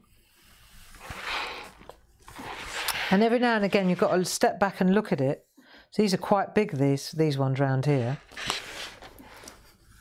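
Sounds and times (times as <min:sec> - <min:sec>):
paper scraping on tabletop: 0:00.5 - 0:04.4, 0:07.9 - 0:10.0.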